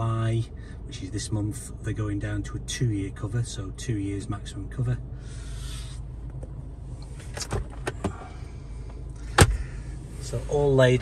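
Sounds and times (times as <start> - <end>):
car engine idling in cabin: 0.0 - 11.0.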